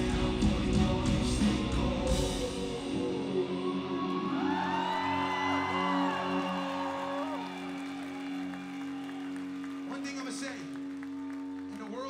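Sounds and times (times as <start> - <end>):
rock band holding chord: 0.0 - 12.0
crowd whooping and cheering: 3.3 - 12.0.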